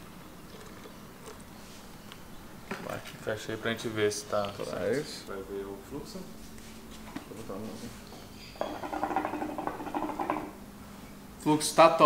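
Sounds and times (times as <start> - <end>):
water bubbling in hookah: 0.4 - 1.6, 8.7 - 10.6.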